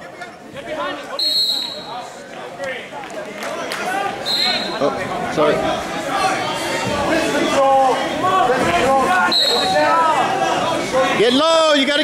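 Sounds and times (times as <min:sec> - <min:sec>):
spectators' voices: 0:00.0 - 0:12.0
referee's whistle blasts: 0:01.2 - 0:01.9, 0:04.2 - 0:04.8, 0:09.3 - 0:09.8.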